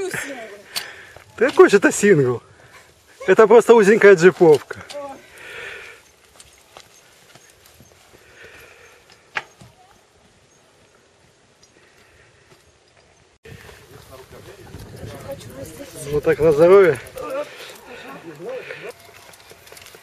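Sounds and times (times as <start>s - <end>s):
steady outdoor noise: 0.0s - 20.0s
bike tyres crunching on gravel: 13.5s - 20.0s.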